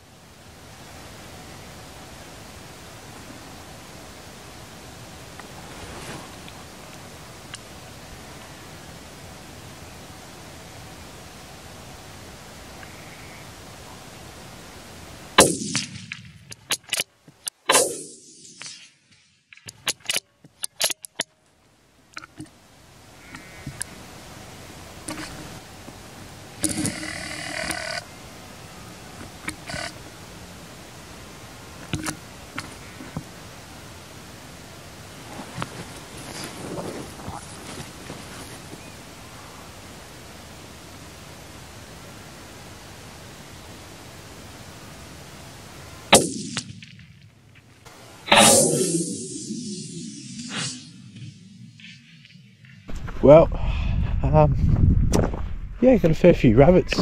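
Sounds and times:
faint rustles: 3.1 - 10.2, 19.6 - 28.1, 34.6 - 40.2
rifle shot: 15.4 - 17.0, 17.7 - 19.0, 46.1 - 47.1, 48.3 - 52.0
sharp clicks: 15.4 - 21.3, 26.6 - 28.1.

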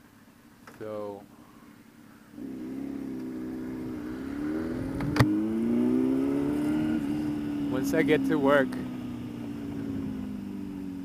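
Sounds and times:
motorcycle engine accelerating: 2.4 - 11.0.

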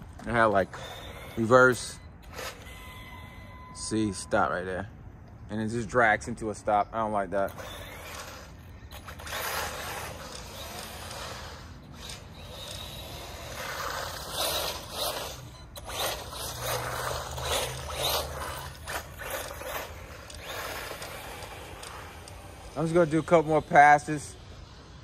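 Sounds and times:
rc truck motor whirring: 0.0 - 25.0.

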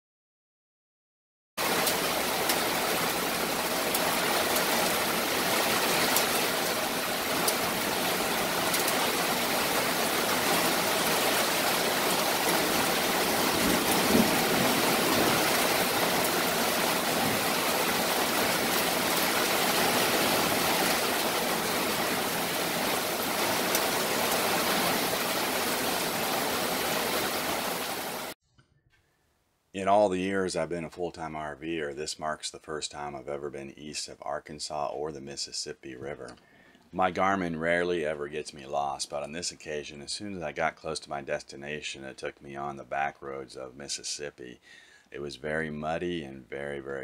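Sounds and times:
heavy rain: 1.6 - 28.4
sharp ticks of raindrops: 1.6 - 28.4.

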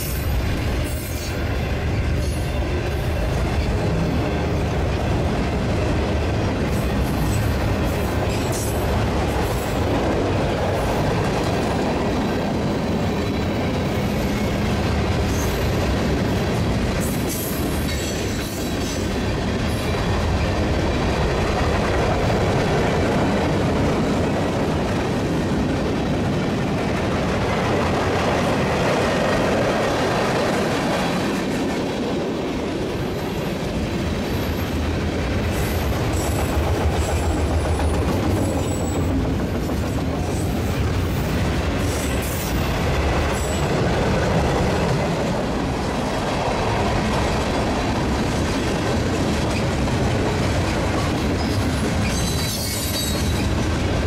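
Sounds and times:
freight train rolling past: 0.0 - 54.0
steel wheels clattering on rail: 0.0 - 54.0.

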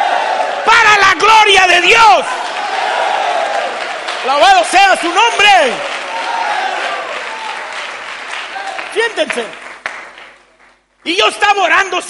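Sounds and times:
congregation applauding: 0.0 - 11.4.

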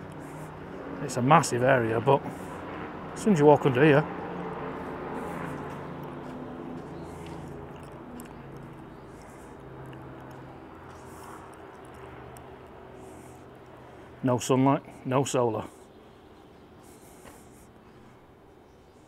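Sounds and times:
low mechanical hum: 4.0 - 19.0.

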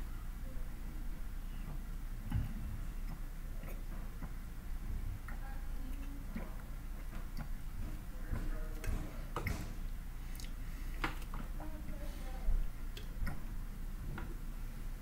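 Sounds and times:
low steady hum: 0.0 - 15.0
swallowing gulps: 1.6 - 5.4.

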